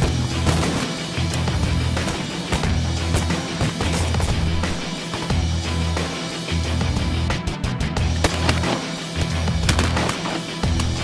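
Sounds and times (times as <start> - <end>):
heavy metal rock music: 0.0 - 11.0
sharp cracks: 8.2 - 11.0.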